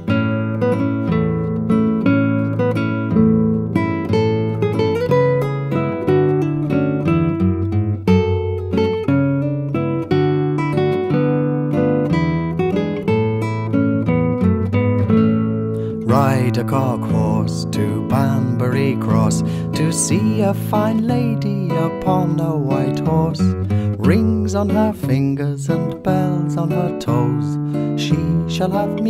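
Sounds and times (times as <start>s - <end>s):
acoustic guitar plucked and strummed: 0.0s - 29.0s.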